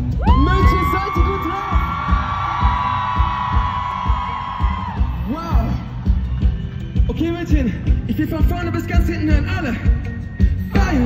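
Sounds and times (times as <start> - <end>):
drum beat: 0.0 - 11.0
live pop band playing: 0.0 - 11.0.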